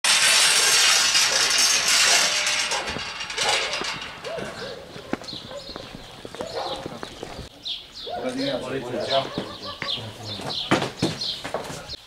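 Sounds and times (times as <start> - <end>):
gear clattering: 0.0 - 6.1
metal gate rattling: 0.0 - 7.0.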